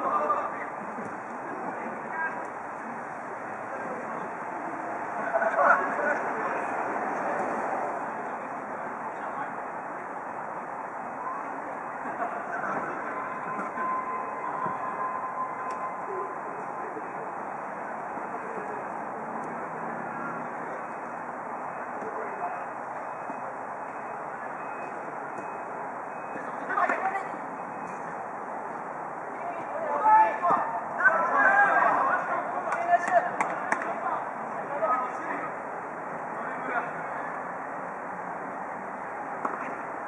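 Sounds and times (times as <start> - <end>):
outdoor background noise: 0.0 - 40.0
players calling out: 11.1 - 35.6
faint steady high tone: 12.9 - 19.0.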